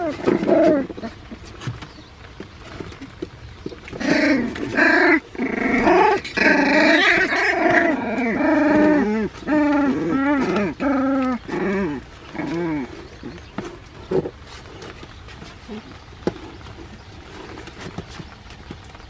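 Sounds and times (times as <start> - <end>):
puppies crying: 4.0 - 13.5.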